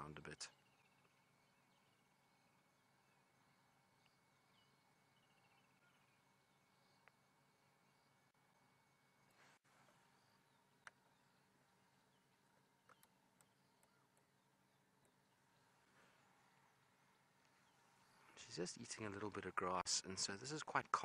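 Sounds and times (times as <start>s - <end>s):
faint bird chirps: 0.0s - 19.8s
soft clicks: 12.8s - 14.3s.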